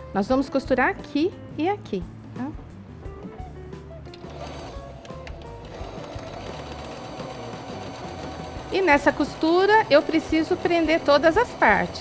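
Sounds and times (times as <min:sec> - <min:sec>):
sewing machine stitching fabric: 0:05.6 - 0:12.0.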